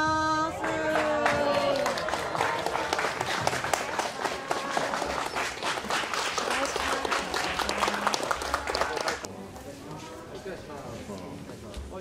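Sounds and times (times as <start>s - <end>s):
people applauding: 0.5s - 9.3s.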